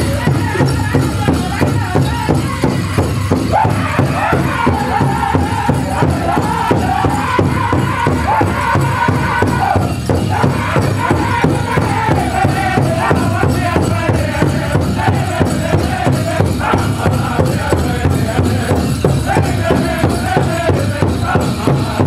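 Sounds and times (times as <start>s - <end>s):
group singing high in unison: 0.0s - 22.0s
large drum fast beat: 0.0s - 22.0s.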